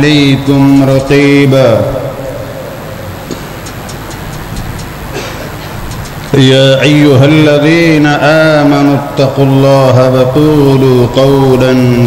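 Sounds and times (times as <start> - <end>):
low hum: 0.0 - 7.3
hiss: 3.2 - 6.3
faint clicks: 3.3 - 5.0, 5.8 - 6.4.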